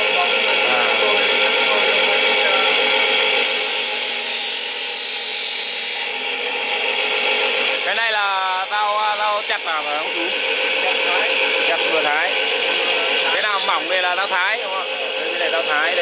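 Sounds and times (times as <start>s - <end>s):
bench grinder whine: 0.0s - 16.0s
knife blade grinding hiss: 3.3s - 6.5s, 7.6s - 10.1s.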